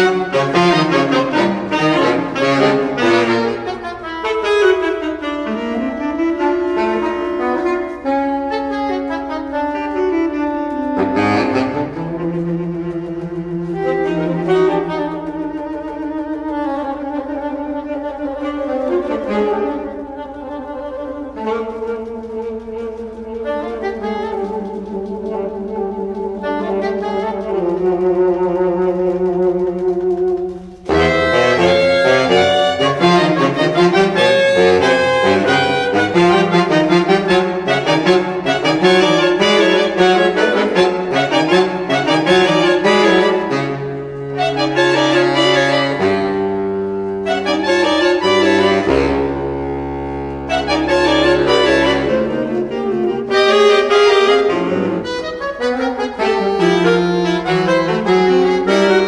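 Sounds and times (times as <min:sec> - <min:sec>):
saxophone quartet playing: 0:00.0 - 0:59.0.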